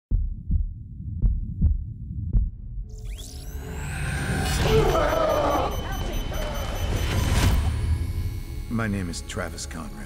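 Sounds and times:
deep heartbeat thuds: 0:00.1 - 0:02.9.

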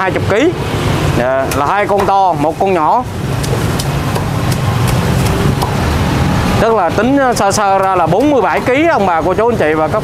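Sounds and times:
steady low rumble: 0:00.6 - 0:09.2
cleaver chopping on wooden block: 0:03.4 - 0:05.8.

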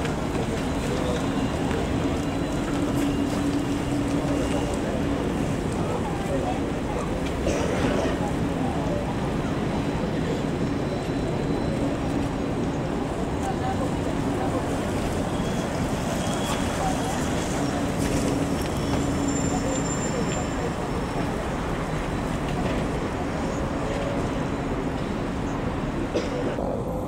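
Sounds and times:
street traffic noise: 0:00.0 - 0:27.0
trolleybus driving: 0:00.0 - 0:27.0.

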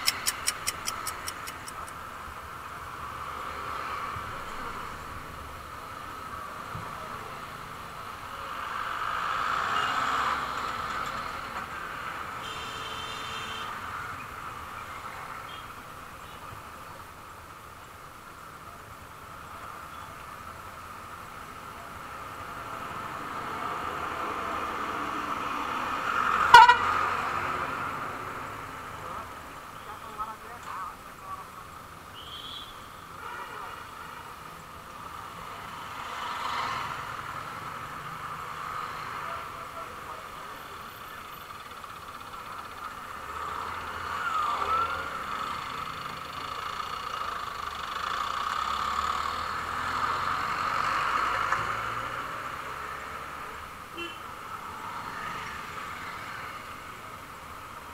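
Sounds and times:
street traffic hiss: 0:00.0 - 0:57.9
vehicle horn: 0:12.4 - 0:13.8, 0:26.5 - 0:27.0, 0:32.2 - 0:33.8, 0:53.9 - 0:54.2
voices: 0:39.0 - 0:48.2.

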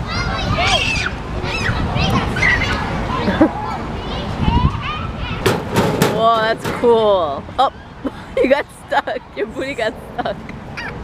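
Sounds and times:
children shouting and squealing: 0:00.0 - 0:05.6, 0:10.7 - 0:11.0.

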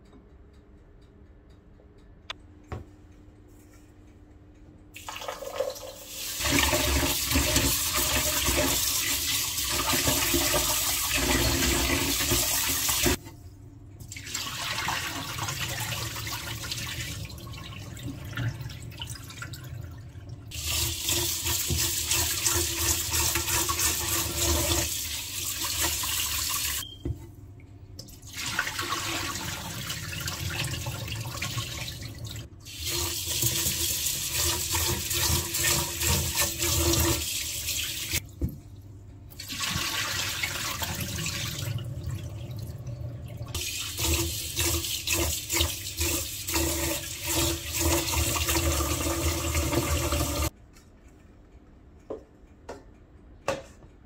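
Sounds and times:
tap water running into a pot: 0:05.0 - 0:13.2, 0:14.1 - 0:26.8, 0:28.0 - 0:38.2, 0:39.4 - 0:50.5.

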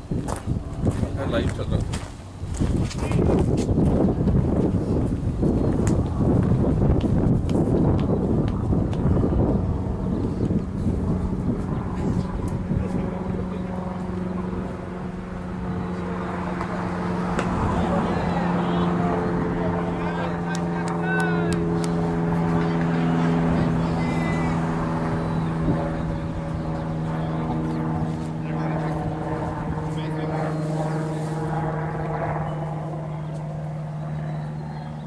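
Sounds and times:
steady engine drone: 0:00.0 - 0:35.0.

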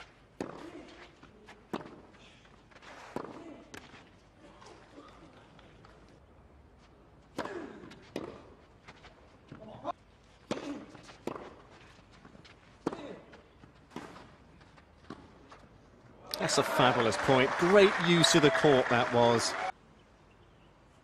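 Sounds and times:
tennis ball hit with rackets: 0:10.5 - 0:11.6.

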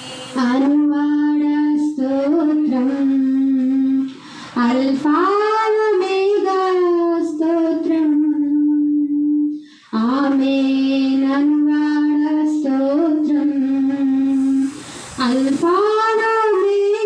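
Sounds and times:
woman singing into microphone: 0:00.3 - 0:17.0.

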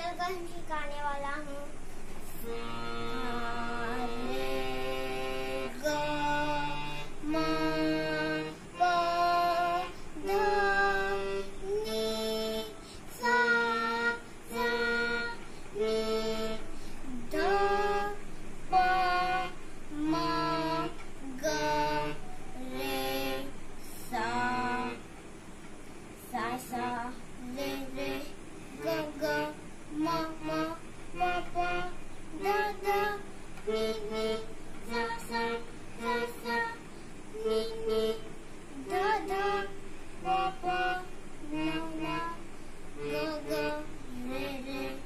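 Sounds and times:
child singing: 0:00.0 - 0:25.0, 0:26.2 - 0:42.4, 0:43.0 - 0:45.0.

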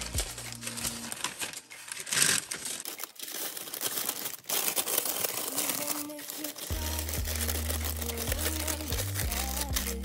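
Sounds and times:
paper and foil crinkling: 0:00.0 - 0:10.0.

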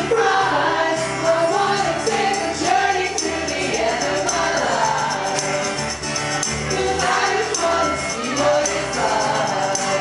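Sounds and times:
pop band playing live: 0:00.0 - 0:10.0
high ticking percussion: 0:01.2 - 0:10.0.

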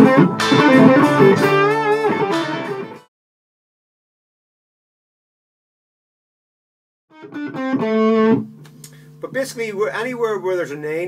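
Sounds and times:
electric guitar: 0:00.0 - 0:03.1, 0:07.1 - 0:09.1.

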